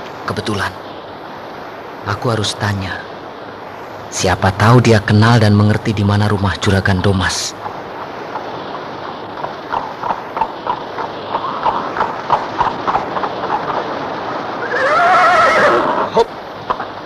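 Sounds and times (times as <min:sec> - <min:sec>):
horse hooves clip-clopping: 0:07.5 - 0:15.4
horse whinnying: 0:14.6 - 0:16.3.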